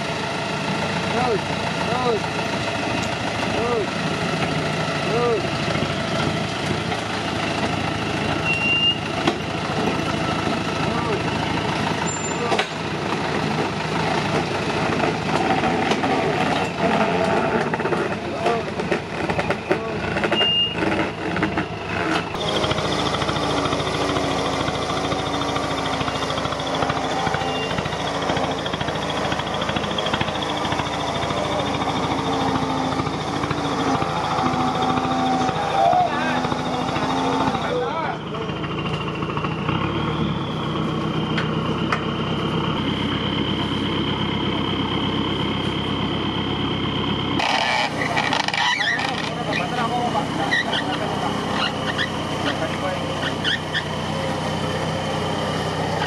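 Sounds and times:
off-road vehicle engine running: 0.0s - 56.0s
people's voices: 3.4s - 4.0s, 5.0s - 5.5s, 18.1s - 20.4s, 33.8s - 38.7s, 48.2s - 54.6s.

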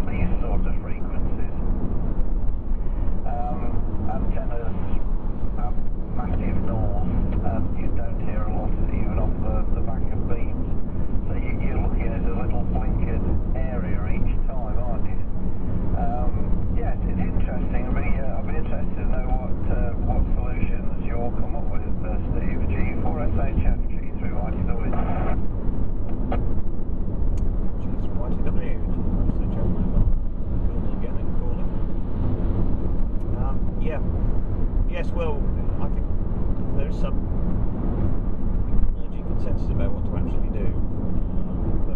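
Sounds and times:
indistinct voices talking: 0.0s - 1.6s, 2.8s - 15.3s, 16.0s - 25.4s, 27.8s - 31.7s, 33.2s - 34.2s, 34.8s - 37.2s, 39.0s - 40.8s
car road and engine rumble: 0.0s - 41.9s.

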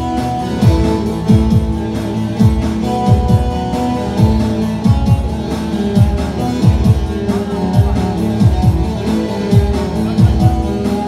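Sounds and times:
saz playing folk music: 0.0s - 11.0s.

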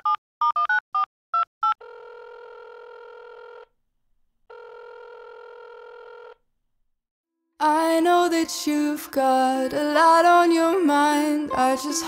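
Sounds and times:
telephone ringing tones: 0.0s - 3.7s, 4.5s - 6.4s.

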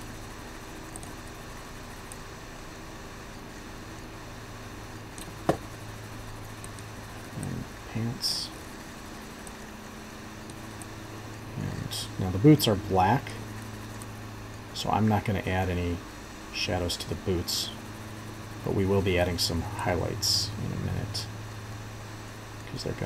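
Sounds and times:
low electrical hum: 0.0s - 23.0s.

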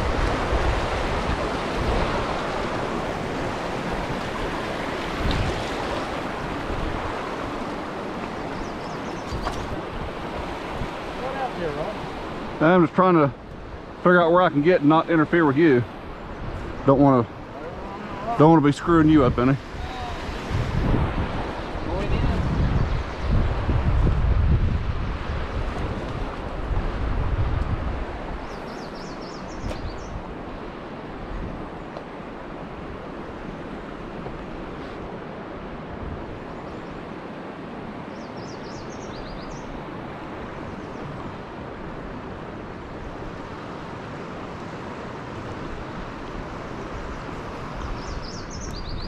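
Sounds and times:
river water flowing: 0.0s - 49.0s
wind: 0.0s - 49.0s
wind buffeting microphone: 0.0s - 49.0s.

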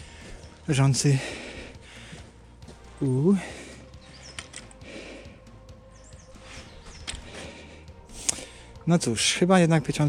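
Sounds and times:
faint background music: 0.0s - 10.0s
small bird chirping: 3.9s - 4.5s, 5.9s - 7.4s
sharp clicks: 4.2s - 4.8s, 6.5s - 7.5s, 8.2s - 8.6s.

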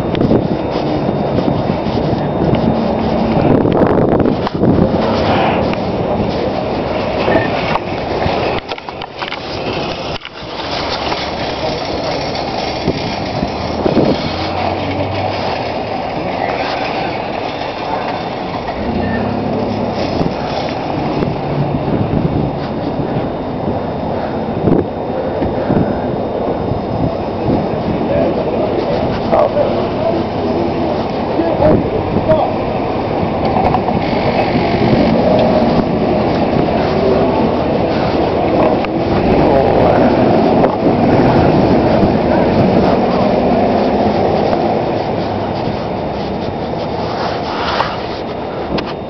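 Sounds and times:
handheld camera rumbling and rustling: 0.0s - 49.0s.

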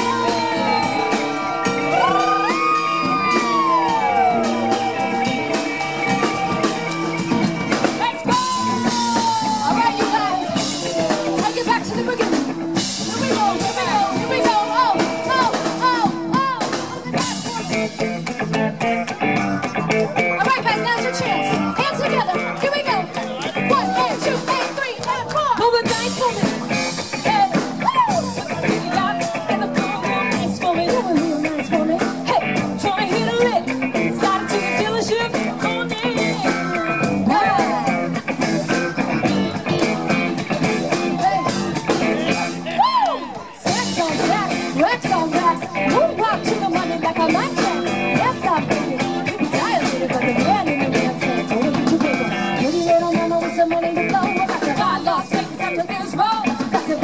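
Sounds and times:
woman singing lead: 0.0s - 18.5s, 19.2s - 57.0s
drum kit beat: 0.0s - 57.0s
electric guitar: 0.0s - 57.0s
keyboards: 0.0s - 57.0s.

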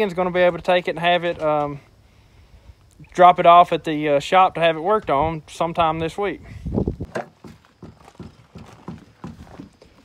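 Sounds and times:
footsteps on gravel: 7.3s - 10.0s.

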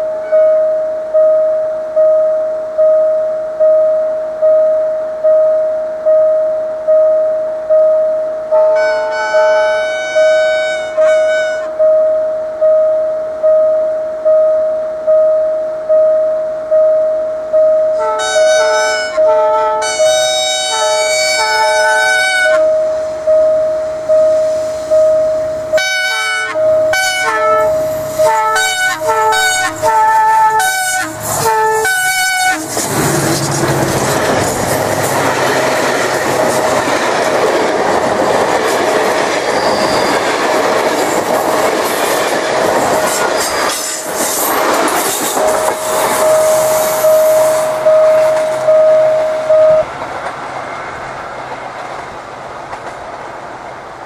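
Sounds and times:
train wheel and rail noise: 0.0s - 54.0s
locomotive horn blasts: 8.6s - 11.8s, 17.9s - 22.8s, 25.7s - 32.7s.

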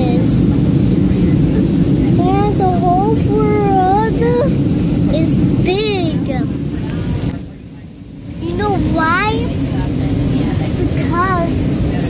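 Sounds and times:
airliner cabin rumble: 0.0s - 12.0s
young child's high voice: 2.2s - 4.6s.

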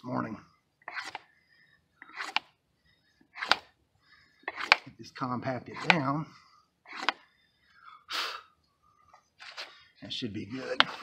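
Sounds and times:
wooden board scraping on stone: 0.8s - 1.3s, 2.0s - 2.5s, 3.3s - 3.7s, 4.4s - 4.9s, 5.7s - 6.1s, 6.9s - 7.2s, 10.7s - 11.0s.

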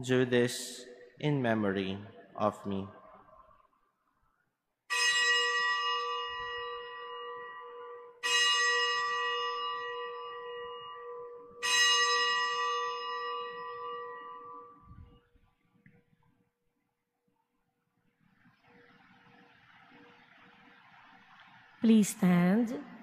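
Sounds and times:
altar bell ringing: 4.9s - 15.2s.

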